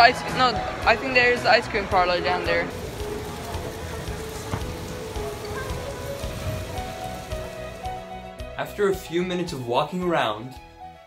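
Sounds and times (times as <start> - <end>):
faint music: 0.0 - 10.6
indoor waterfall splashing: 2.2 - 8.1.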